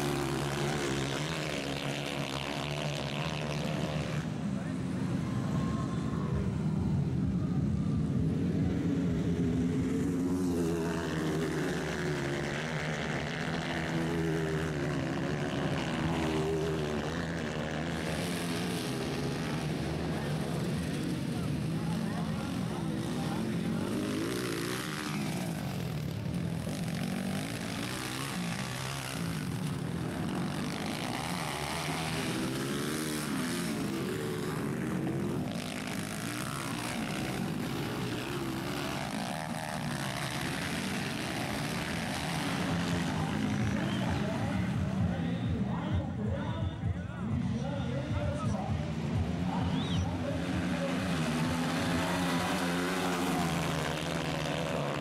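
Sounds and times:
dirt bike engines revving: 0.0 - 55.0.

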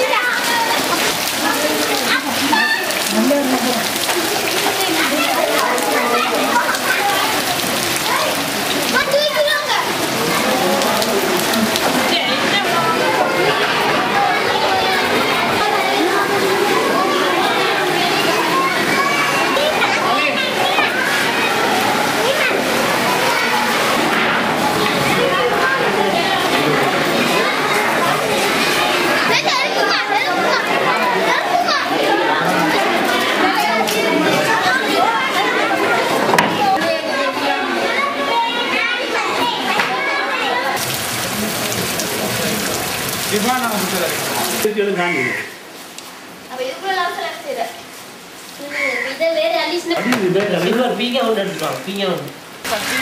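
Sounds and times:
children chattering and calling out: 0.0 - 53.0
loud hiss of water: 40.7 - 46.9, 52.4 - 53.0.

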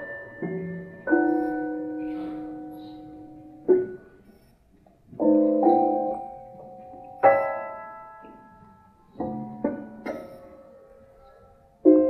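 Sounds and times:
piano chords ringing: 0.0 - 12.0
prepared piano notes: 0.0 - 12.0.

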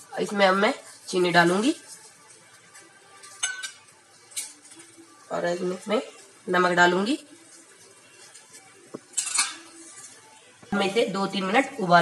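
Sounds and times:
pot of water boiling: 0.0 - 12.0
kitchenware clinking: 2.8 - 4.9, 8.2 - 10.2.

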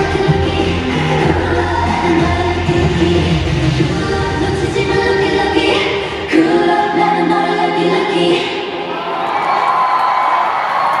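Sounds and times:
pop song over sound system: 0.0 - 8.9
crowd cheering: 8.8 - 11.0.

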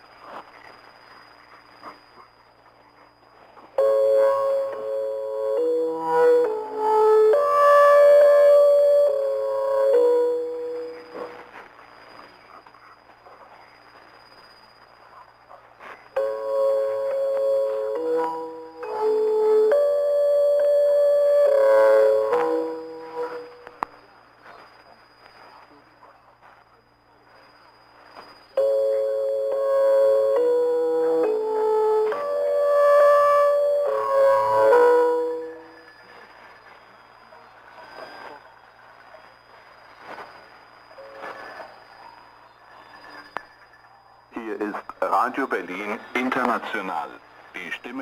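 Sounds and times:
shortwave static: 0.0 - 42.0
electronic keyboard chord melody: 3.8 - 11.6, 16.2 - 23.8, 28.6 - 35.9.

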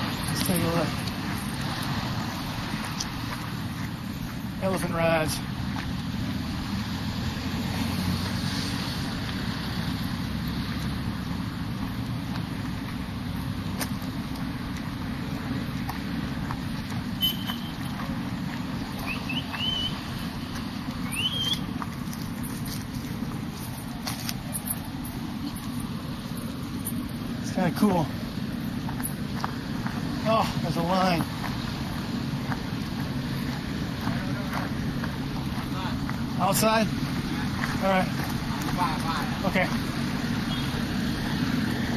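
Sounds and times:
steady low rumble: 9.0 - 41.9
short high whistle: 17.2 - 17.6, 19.1 - 20.0, 21.1 - 21.6
quick rising chirps: 21.0 - 21.7.

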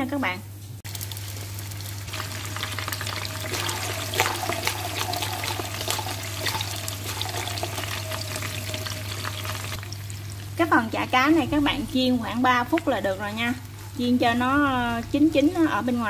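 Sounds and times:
fish cake sizzling in oil: 0.6 - 16.0.

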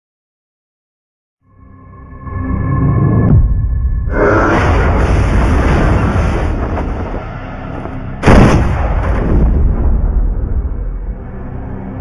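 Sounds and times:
heavy boom: 3.3 - 11.1
dense rumbling crash: 3.3 - 11.3.

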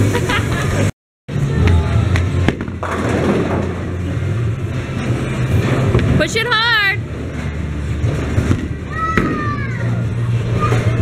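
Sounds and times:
bowling balls rolling: 0.0 - 11.0.

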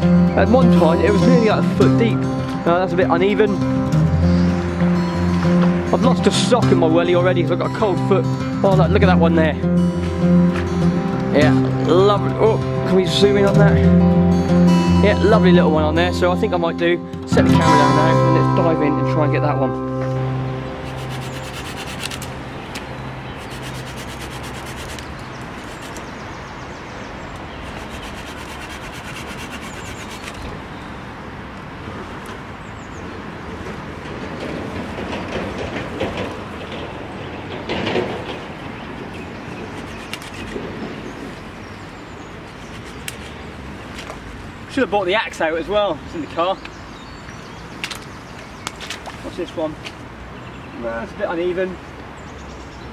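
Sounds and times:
guitar music: 0.0 - 24.8
saw rasping through branches: 20.8 - 22.4, 23.3 - 26.1, 27.6 - 30.5, 39.6 - 40.6, 42.6 - 43.4
twigs rustling: 20.8 - 26.2.

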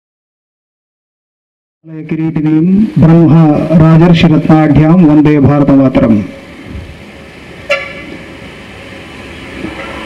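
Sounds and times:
steady background noise: 1.9 - 10.0
vehicle horn toot: 7.7 - 8.1.

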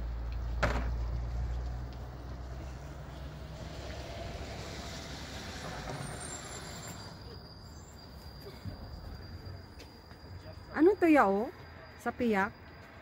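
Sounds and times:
chairlift rumbling and hissing: 2.5 - 9.6.

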